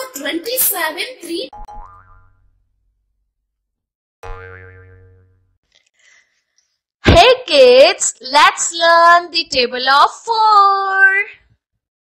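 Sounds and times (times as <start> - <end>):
cartoon boing: 1.5 - 2.6, 4.2 - 5.6.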